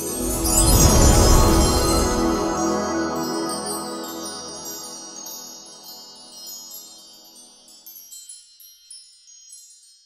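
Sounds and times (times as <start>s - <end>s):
chime-like jingle tinkling: 0.0s - 10.0s.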